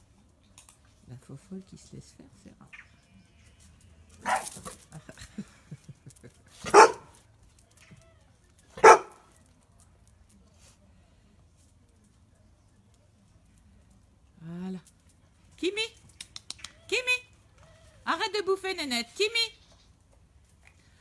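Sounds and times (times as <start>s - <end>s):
dog barking: 4.2s - 4.5s, 6.6s - 7.1s, 8.8s - 9.2s.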